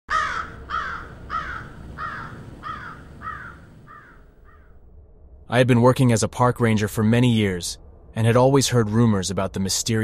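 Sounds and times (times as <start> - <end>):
bird harsh calls: 0.1 - 4.8.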